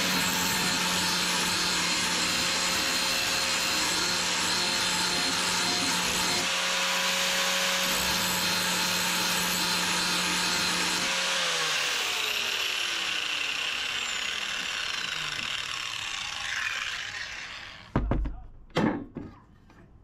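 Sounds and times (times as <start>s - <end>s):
angle grinder grinding steel: 0.0s - 17.9s.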